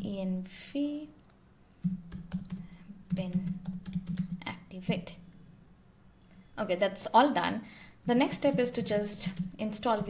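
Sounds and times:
computer keyboard typing: 1.8s - 4.6s, 8.1s - 10.0s.

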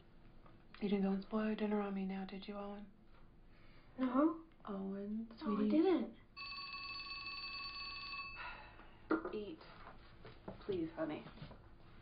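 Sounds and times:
telephone ringing: 6.4s - 8.8s.

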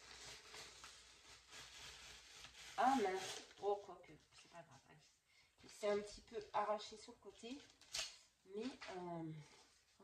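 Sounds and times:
masking tape peeled off paper: 0.0s - 3.8s.

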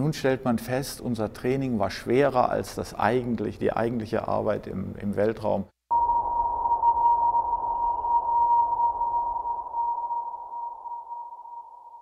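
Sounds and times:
steady electronic tone: 5.9s - 12.0s.

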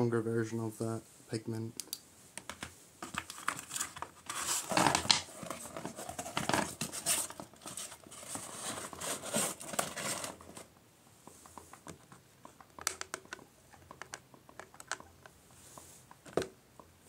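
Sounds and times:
rustling and crinkling objects: 2.5s - 12.6s.

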